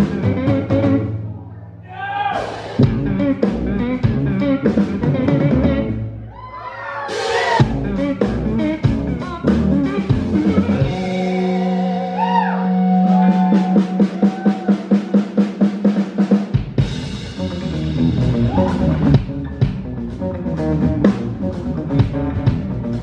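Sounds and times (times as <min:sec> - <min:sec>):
drum kit: 0:00.0 - 0:01.3, 0:01.9 - 0:23.0
electric guitar bending notes: 0:00.0 - 0:01.5, 0:02.7 - 0:06.3, 0:07.6 - 0:14.8, 0:16.8 - 0:23.0
bass guitar low note: 0:00.0 - 0:01.8, 0:02.8 - 0:06.3, 0:07.6 - 0:14.2, 0:16.8 - 0:23.0.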